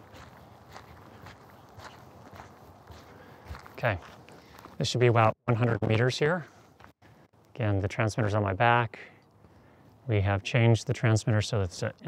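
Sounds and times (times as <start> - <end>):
footsteps on gravel: 0.0 - 4.9, 5.6 - 7.0.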